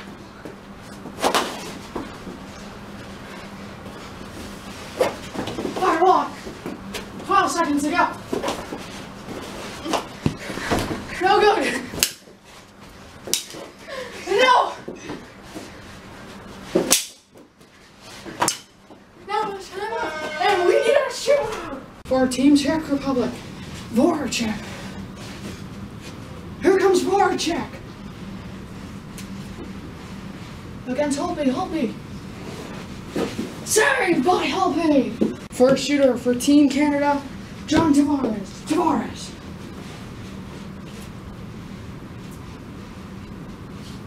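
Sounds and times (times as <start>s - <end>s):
children shouting: 19.4s - 21.9s.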